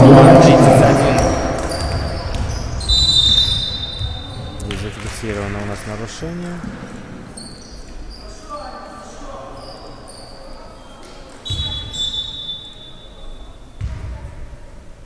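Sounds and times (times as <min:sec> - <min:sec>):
sneakers squeaking on floor: 0:01.2 - 0:04.8, 0:07.2 - 0:14.2.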